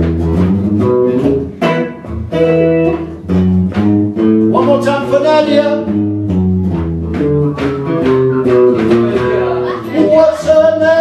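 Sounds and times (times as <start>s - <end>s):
electric guitar single picked notes: 0.0s - 11.0s.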